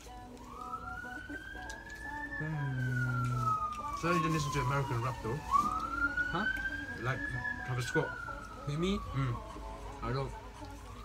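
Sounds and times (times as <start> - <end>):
emergency vehicle siren wailing: 0.1 - 9.9, 10.5 - 11.0.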